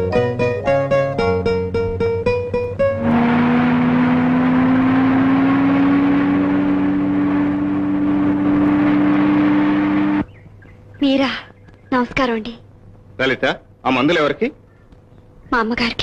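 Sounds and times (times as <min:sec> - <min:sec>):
car engine driving: 0:00.7 - 0:11.0.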